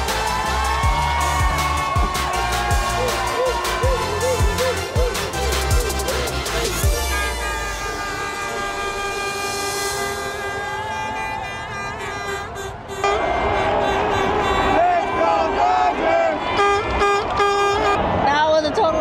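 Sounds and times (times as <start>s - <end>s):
voices shouting: 0.0s - 6.9s, 13.1s - 18.2s
parade crowd: 0.0s - 19.0s
horn blasts: 2.8s - 18.2s.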